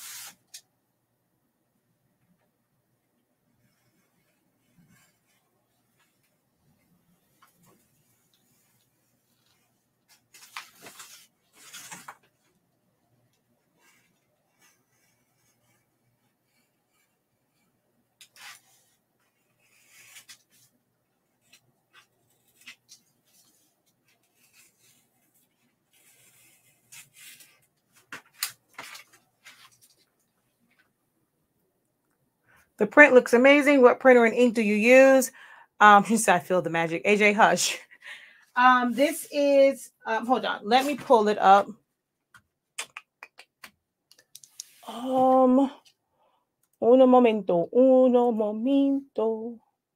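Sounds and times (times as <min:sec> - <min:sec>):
paper rustling: 0:07.4 - 0:12.6, 0:18.2 - 0:20.8, 0:21.4 - 0:30.9, 0:40.7 - 0:41.2.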